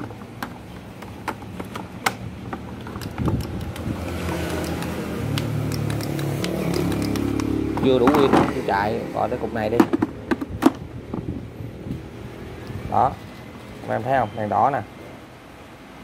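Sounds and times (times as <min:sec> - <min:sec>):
plastic battery packs clicking: 0:00.0 - 0:08.5
engine hum: 0:00.0 - 0:16.0.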